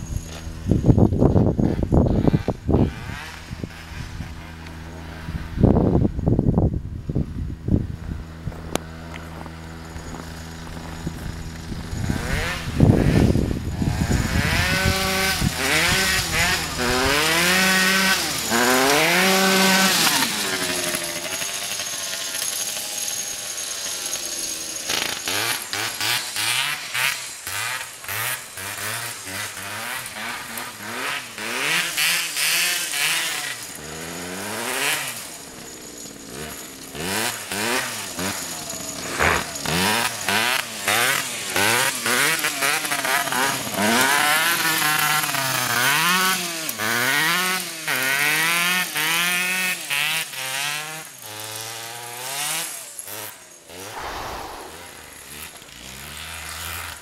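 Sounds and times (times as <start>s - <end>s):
go-kart engine revving: 0.0s - 6.4s, 8.3s - 54.0s.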